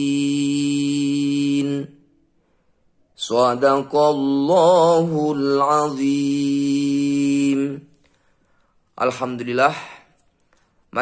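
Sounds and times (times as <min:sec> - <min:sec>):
man reciting in chant: 0:00.0 - 0:02.0, 0:03.2 - 0:07.9, 0:09.0 - 0:10.2.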